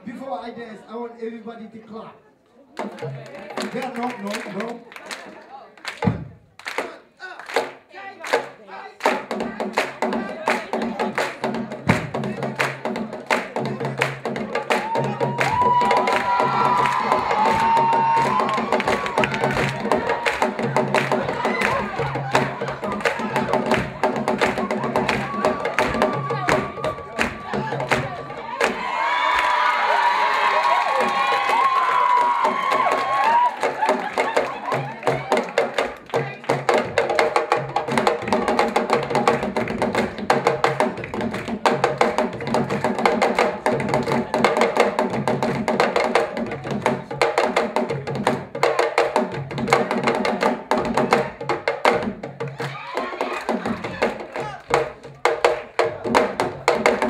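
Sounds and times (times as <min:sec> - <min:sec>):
hand drums played fast: 0:02.8 - 0:04.8, 0:05.9 - 0:57.0
audience cheering: 0:14.4 - 0:36.5, 0:52.4 - 0:55.0.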